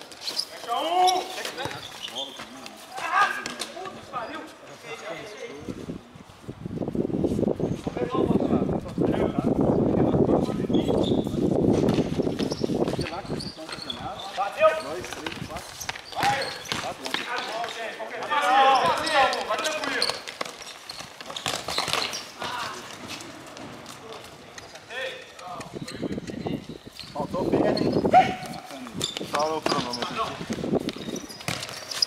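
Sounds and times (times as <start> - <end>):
ball kicked and bouncing on concrete: 0.1 - 4.0, 11.7 - 26.4, 27.6 - 32.0.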